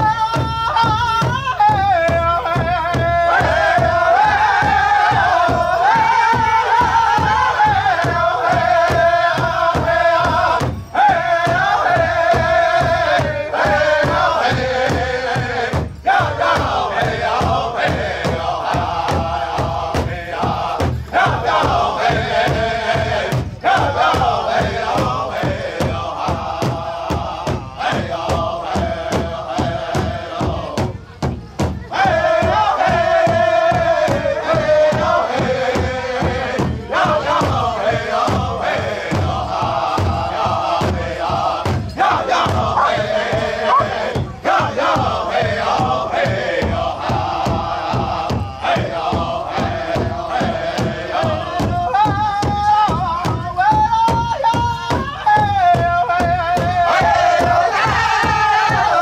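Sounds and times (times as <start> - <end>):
large hand drum beat: 0.0 - 59.0
voices chanting in unison: 0.0 - 59.0.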